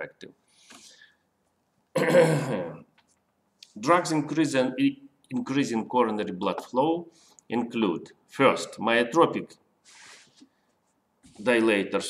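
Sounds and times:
man clearing his throat: 1.9s - 2.9s.

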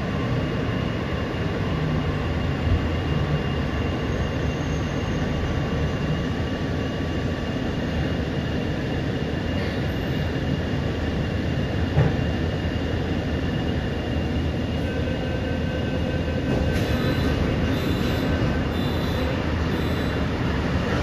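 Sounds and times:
train car hum and hiss: 0.0s - 21.0s.

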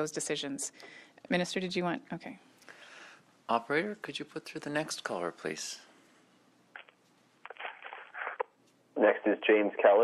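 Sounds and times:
faint telephone line sounds: 6.8s - 10.0s.

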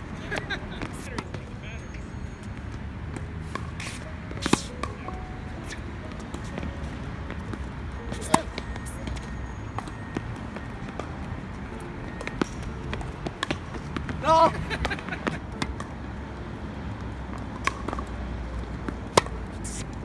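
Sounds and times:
tennis ball hits: 0.0s - 16.1s, 17.0s - 19.9s.

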